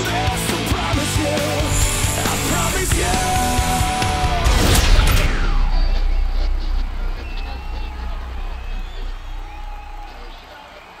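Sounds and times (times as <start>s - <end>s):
low rumble: 1.7s - 10.6s.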